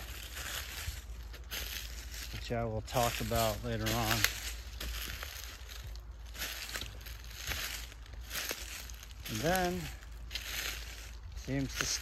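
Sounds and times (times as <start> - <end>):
footsteps crunching on forest floor: 0.0 - 12.0.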